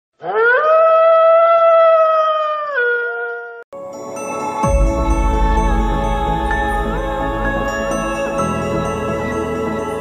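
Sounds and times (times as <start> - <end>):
dog howling: 0.2 - 3.6.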